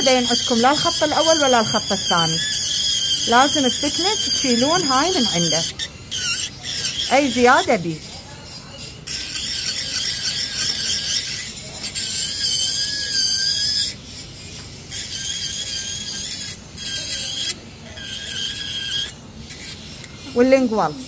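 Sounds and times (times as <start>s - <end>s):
dental handpiece high-pitched whine: 0.0s - 21.0s.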